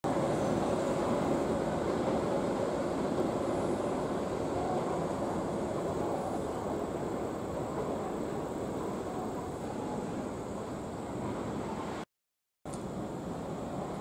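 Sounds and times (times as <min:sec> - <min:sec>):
train running: 0:00.0 - 0:12.0, 0:12.7 - 0:14.0.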